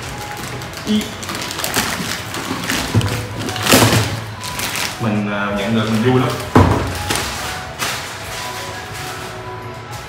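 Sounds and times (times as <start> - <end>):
plastic bag crinkling: 0.0 - 10.0
cardboard box knocks: 6.5 - 7.1.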